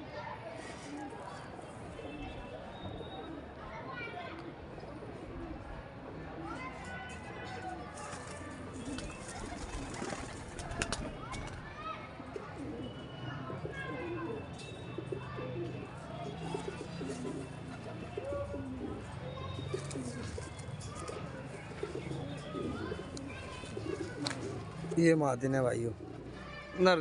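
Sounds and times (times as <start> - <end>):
pigeons cooing: 8.6 - 10.9, 12.4 - 25.0, 25.9 - 26.3.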